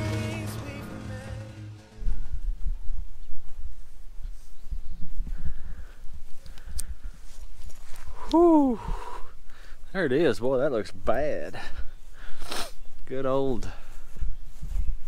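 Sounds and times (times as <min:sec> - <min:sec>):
background music: 0:00.0 - 0:02.6
footsteps: 0:13.6 - 0:15.0.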